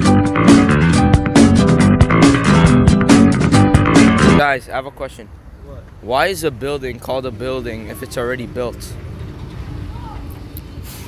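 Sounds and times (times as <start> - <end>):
low outdoor rumble: 1.7 - 11.0
brief hiss: 10.6 - 11.0.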